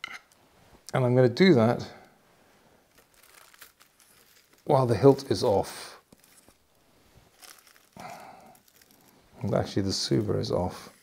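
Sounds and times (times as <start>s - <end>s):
tissue paper rustling: 2.5s - 11.0s.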